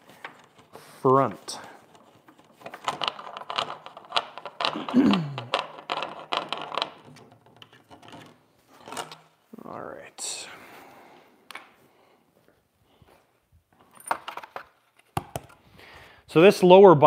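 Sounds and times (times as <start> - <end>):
scraping rustle: 0.0 - 4.0
light handling clicks and clatters: 0.0 - 9.3.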